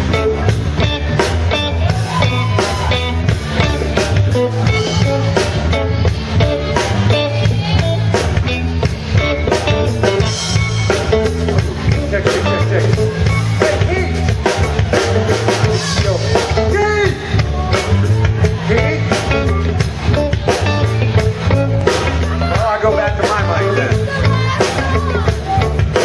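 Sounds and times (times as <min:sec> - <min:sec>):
live reggae band: 0:00.0 - 0:26.0.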